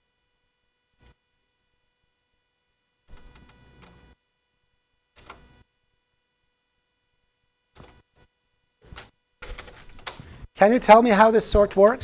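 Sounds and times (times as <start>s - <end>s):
computer keyboard and mouse clicks: 7.8s - 8.0s, 8.8s - 10.3s.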